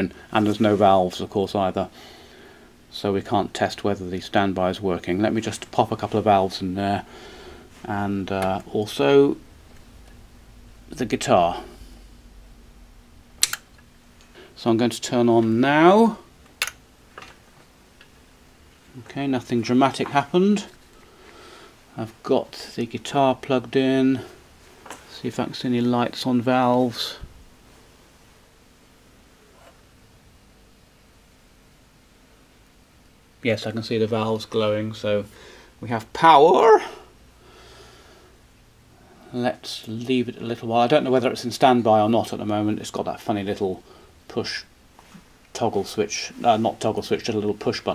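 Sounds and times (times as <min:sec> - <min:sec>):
faint mains hum with hiss: 0:00.0 - 0:47.9.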